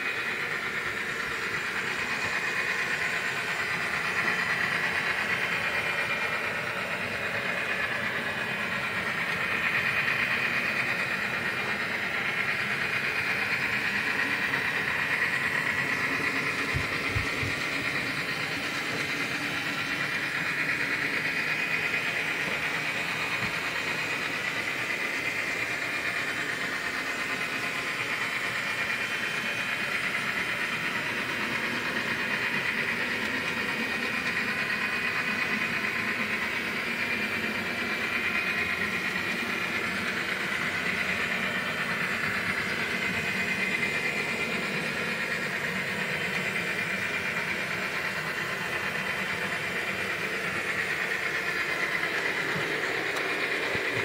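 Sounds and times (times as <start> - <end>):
model train motor whirring: 0.0 - 54.0.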